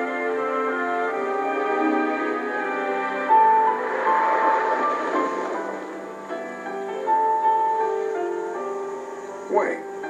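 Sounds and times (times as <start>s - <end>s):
film score melody through tv speaker: 0.0s - 10.0s
car driving: 1.2s - 9.2s.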